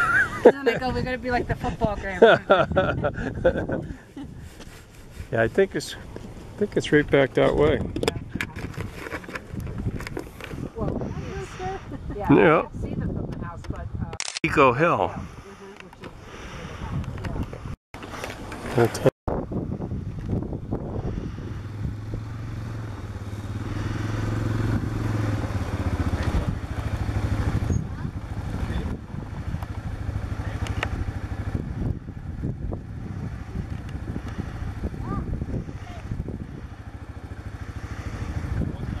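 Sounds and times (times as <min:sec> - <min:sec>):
wind noise on microphone: 0:00.0 - 0:05.4, 0:06.2 - 0:14.3, 0:15.0 - 0:17.8, 0:18.9 - 0:39.0
engine running: 0:18.0 - 0:39.0.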